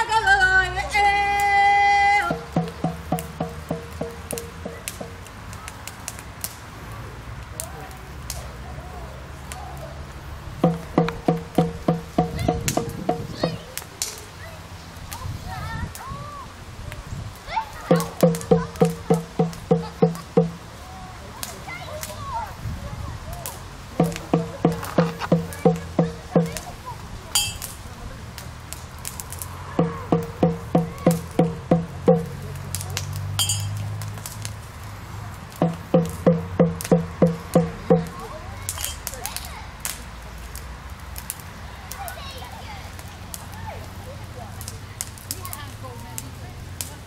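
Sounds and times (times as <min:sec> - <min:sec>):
frame drum struck by hand: 0:02.3 - 0:05.2, 0:10.6 - 0:13.6, 0:17.9 - 0:20.6, 0:24.0 - 0:26.6, 0:29.8 - 0:32.4, 0:35.6 - 0:38.2.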